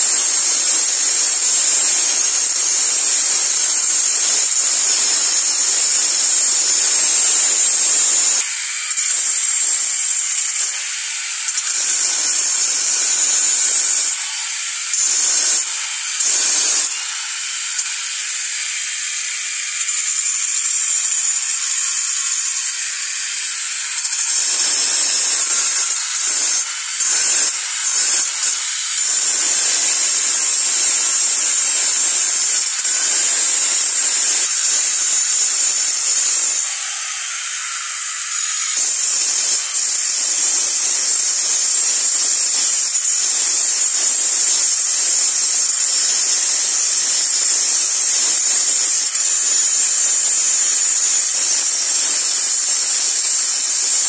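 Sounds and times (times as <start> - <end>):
angle grinder grinding stone: 0.0 - 54.0.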